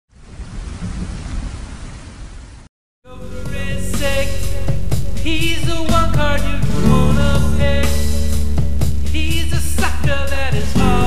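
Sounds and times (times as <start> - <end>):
rain: 0.1 - 2.7
thunder rumbling: 0.2 - 2.4, 3.1 - 11.0.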